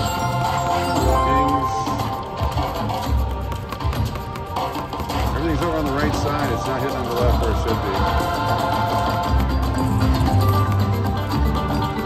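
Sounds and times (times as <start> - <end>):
short chiming tones: 0.0 - 2.4
slot machine music: 0.0 - 3.1.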